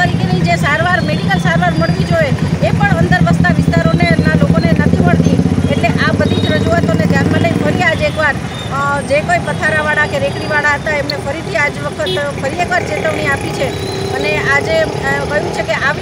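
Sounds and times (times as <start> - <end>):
vehicle engine droning: 0.0 - 16.0
woman talking: 0.0 - 16.0.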